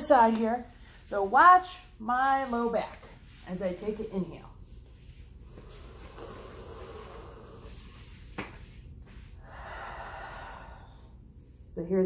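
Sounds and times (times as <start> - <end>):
woman breathing deeply: 5.4 - 8.2, 9.2 - 11.7.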